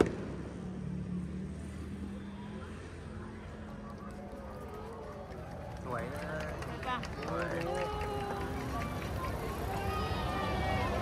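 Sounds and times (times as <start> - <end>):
crowd of spectators talking: 0.0 - 11.0.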